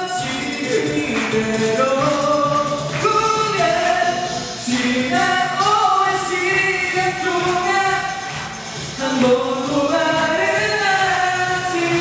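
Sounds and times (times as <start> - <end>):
men singing together: 0.0 - 8.3.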